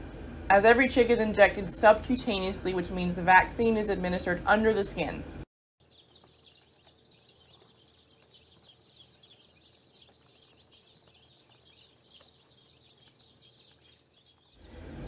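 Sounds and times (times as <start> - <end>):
chicks peeping: 5.8 - 15.0.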